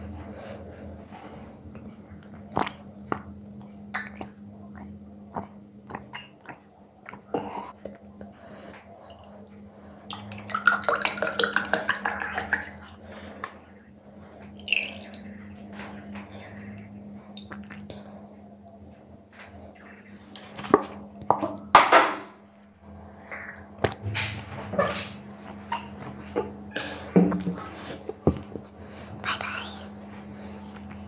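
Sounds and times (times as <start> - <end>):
low electrical hum: 0.0 - 31.0
light drips: 14.4 - 18.1
person whispering: 29.2 - 30.1.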